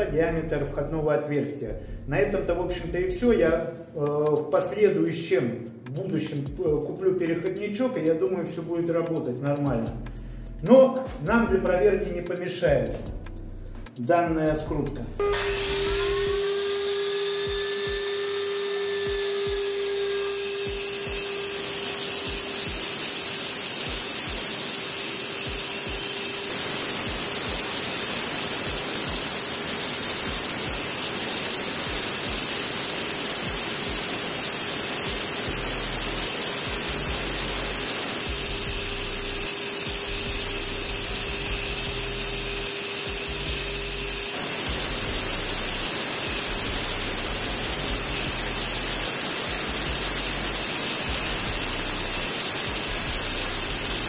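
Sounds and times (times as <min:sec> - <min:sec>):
angle grinder whining: 0:15.1 - 0:54.0
blade cutting into plaster wall: 0:15.2 - 0:54.0.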